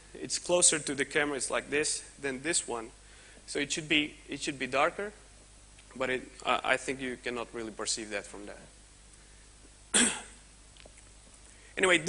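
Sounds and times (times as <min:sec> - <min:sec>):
person coughing: 0:09.9 - 0:10.4.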